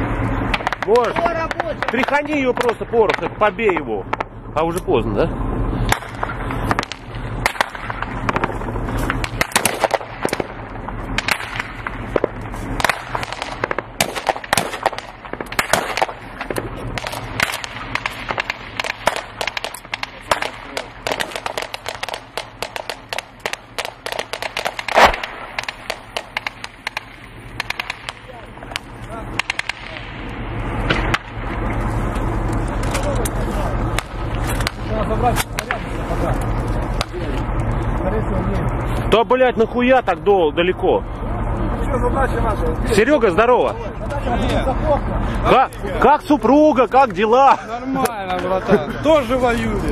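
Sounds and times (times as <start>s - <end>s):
gunshots: 0.4s - 4.3s, 5.9s - 31.7s, 32.3s - 36.2s.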